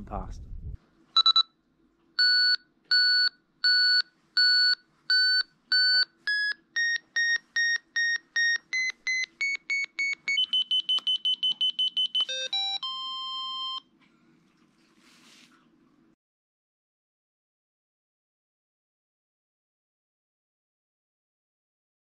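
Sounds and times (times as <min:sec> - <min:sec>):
transceiver beeping: 0:02.2 - 0:13.8.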